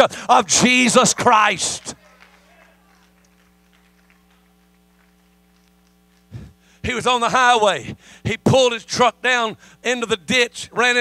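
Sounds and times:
man's voice: 0:00.0 - 0:02.0, 0:06.8 - 0:11.0
electrical mains hum: 0:00.0 - 0:11.0.

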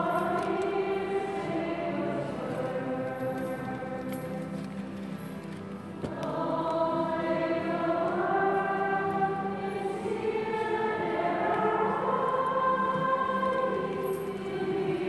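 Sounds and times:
choir singing a hymn: 0:00.0 - 0:15.0.

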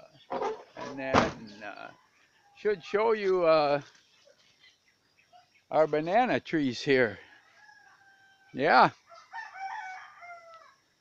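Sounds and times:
rooster crowing: 0:07.2 - 0:10.8.

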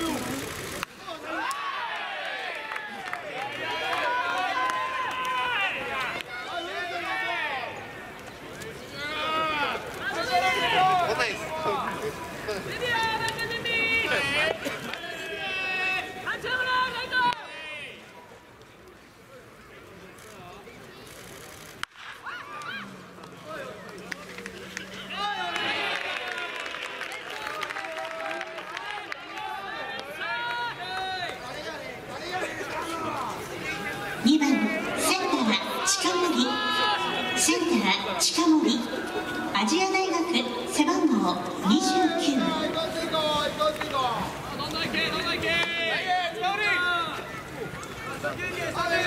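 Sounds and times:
voices shouting and calling out: 0:00.0 - 0:18.5, 0:19.2 - 0:49.0
people shouting: 0:24.9 - 0:26.6, 0:32.8 - 0:39.6.

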